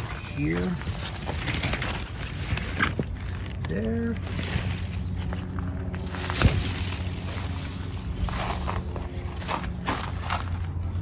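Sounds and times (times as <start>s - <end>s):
leaves rustling: 0.0s - 10.4s
steady low hum: 0.0s - 11.0s.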